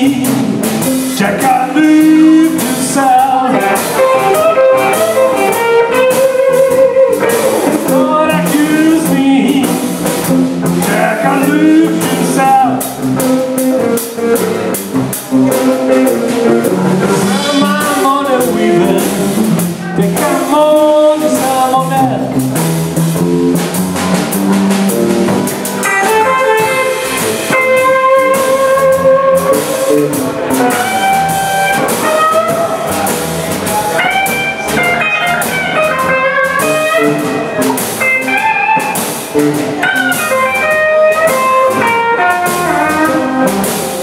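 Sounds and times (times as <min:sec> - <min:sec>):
blues band playing: 0:00.0 - 0:44.0
electric guitar solo: 0:02.5 - 0:09.2, 0:24.9 - 0:44.0.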